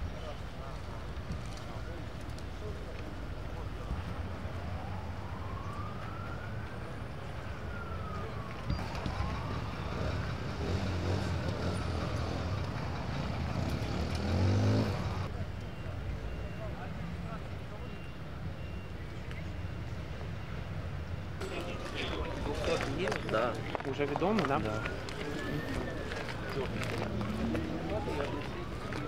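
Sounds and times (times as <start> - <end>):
low rumble of street noise: 0.0 - 29.0
emergency siren wailing: 3.8 - 15.3, 21.4 - 29.0.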